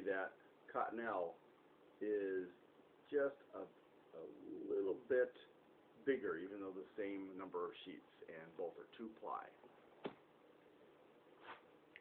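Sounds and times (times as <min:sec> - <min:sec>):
man making wordless vocal sound: 0:04.2 - 0:05.2.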